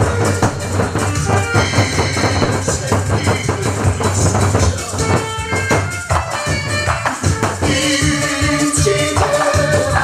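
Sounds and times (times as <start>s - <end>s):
backing music: 0.0s - 10.0s
barrel drums struck with sticks: 0.0s - 10.0s.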